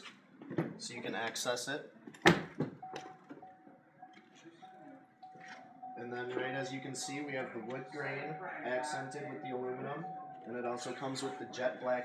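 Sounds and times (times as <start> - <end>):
car door clunk: 2.1 - 3.5
faint high tone: 2.9 - 12.0.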